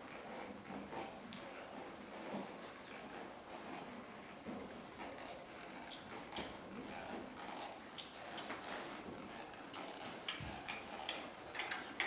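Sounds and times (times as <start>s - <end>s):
hooves and tack clicking: 0.0s - 12.0s.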